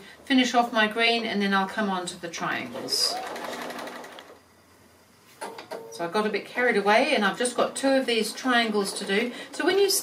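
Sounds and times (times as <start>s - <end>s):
sewing machine stitching: 2.7s - 4.4s.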